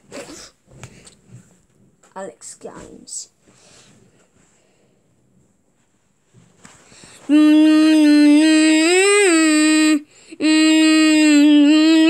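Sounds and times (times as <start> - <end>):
rustling handling noise: 5.3 - 7.3.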